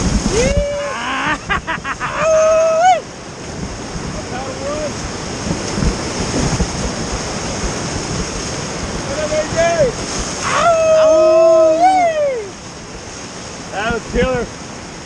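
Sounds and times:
whitewater rushing: 0:00.0 - 0:15.0
person shouting: 0:00.3 - 0:01.4, 0:02.0 - 0:03.0, 0:10.4 - 0:12.5
person yelling: 0:00.3 - 0:03.1, 0:10.4 - 0:12.6.

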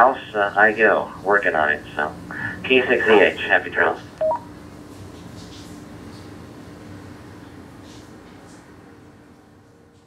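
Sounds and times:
faint steady hum: 0:00.0 - 0:04.9
radio two-note beep: 0:04.2 - 0:04.4.

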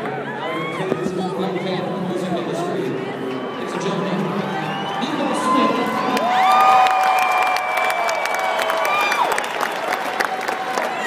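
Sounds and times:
stadium crowd cheering: 0:00.0 - 0:11.0
long held whoops: 0:04.7 - 0:11.0.

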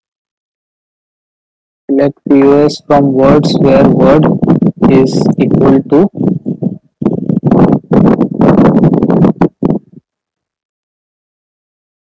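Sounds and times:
man talking: 0:01.9 - 0:06.2.

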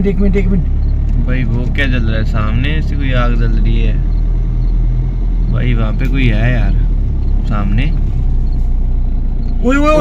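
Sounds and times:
car engine drone from cabin: 0:00.0 - 0:10.0.

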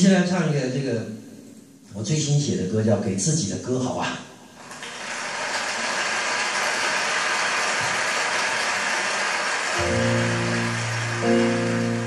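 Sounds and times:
audience applauding: 0:04.6 - 0:12.0.

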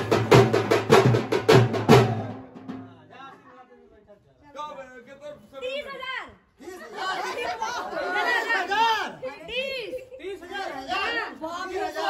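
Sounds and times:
group of people chattering: 0:02.2 - 0:12.0.

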